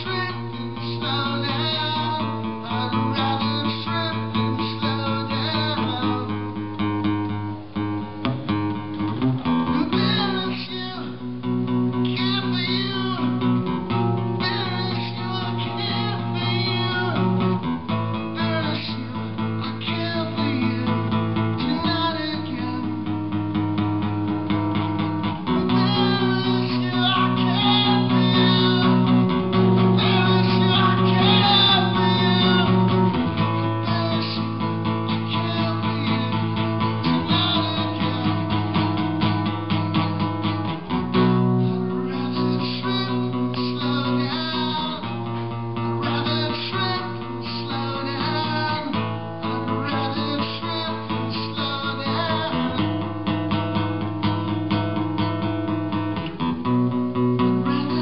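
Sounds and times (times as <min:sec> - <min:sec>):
solo acoustic guitar: 0:00.0 - 0:58.0.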